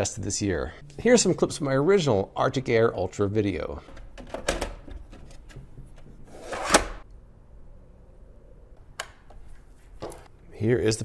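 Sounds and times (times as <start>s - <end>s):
plastic sliding scrape: 6.3s - 7.0s.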